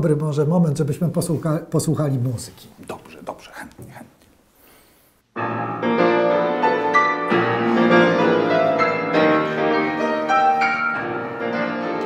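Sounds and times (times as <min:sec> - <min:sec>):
grand piano playing chords: 0:05.4 - 0:12.0.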